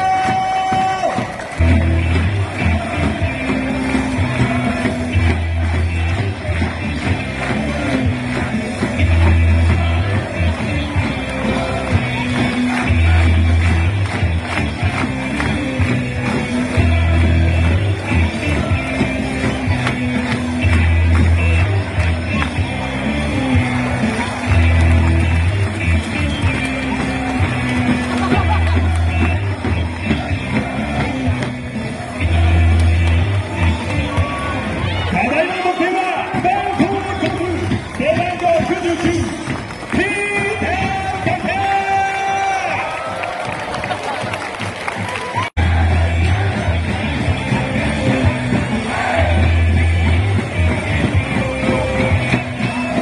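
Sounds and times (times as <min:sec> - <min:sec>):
background music with steady beat: 0:00.0 - 0:42.9, 0:45.3 - 0:53.0.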